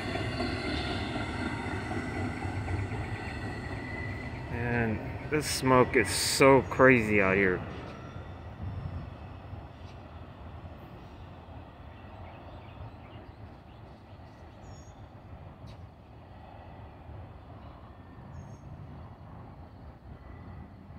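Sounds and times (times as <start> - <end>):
freight train rolling past: 0.0 - 20.9.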